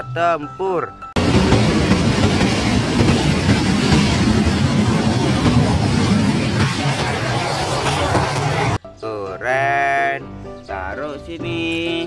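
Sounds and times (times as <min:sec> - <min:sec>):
jet engine running: 0:01.2 - 0:08.8.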